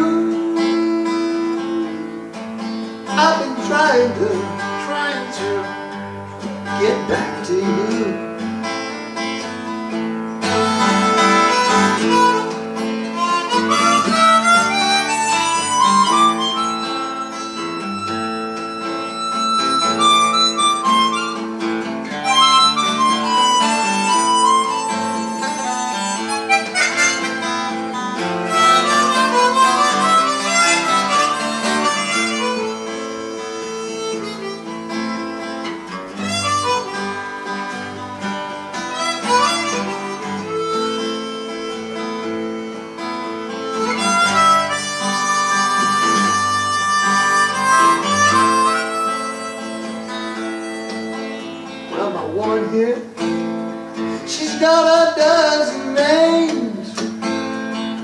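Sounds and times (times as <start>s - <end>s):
harmonica solo: 0.0s - 52.4s
acoustic guitar accompaniment: 0.0s - 58.0s.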